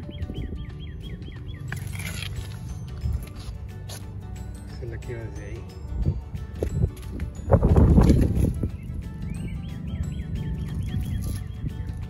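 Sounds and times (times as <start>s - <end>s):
bird chirping: 0.0s - 3.1s, 7.8s - 12.0s.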